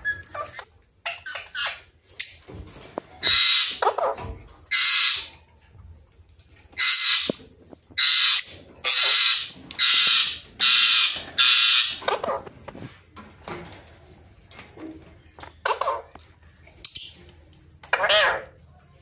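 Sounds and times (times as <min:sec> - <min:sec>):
parrot screeching: 0:03.2 - 0:05.3, 0:06.8 - 0:07.4, 0:08.0 - 0:12.4, 0:17.9 - 0:18.5.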